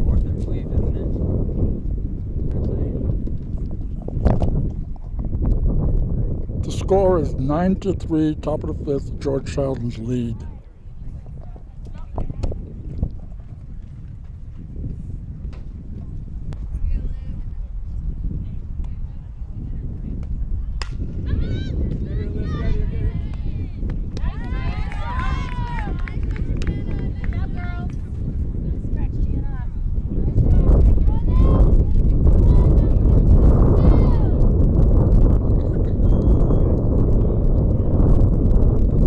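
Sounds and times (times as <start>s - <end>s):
steady low rumble: 0.0s - 39.0s
wind on microphone: 0.0s - 39.0s
bat cracking a ball: 20.8s - 21.2s.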